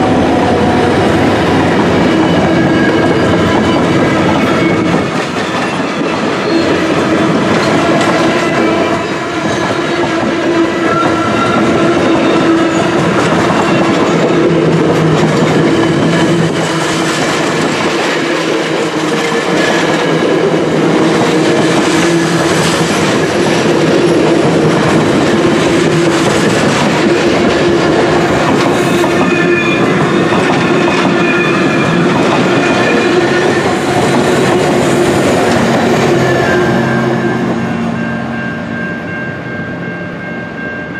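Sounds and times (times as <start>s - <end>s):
train coaches rolling past: 0.0s - 40.9s.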